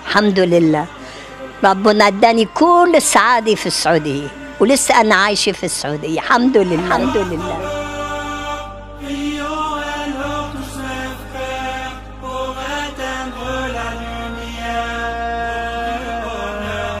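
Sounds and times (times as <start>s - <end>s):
low steady drone: 0.8s - 9.1s
person chanting: 6.4s - 17.0s.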